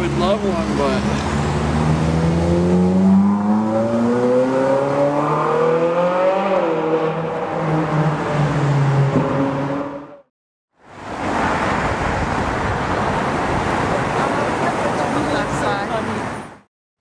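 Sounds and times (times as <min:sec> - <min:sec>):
car engine accelerating: 0:00.2 - 0:10.3.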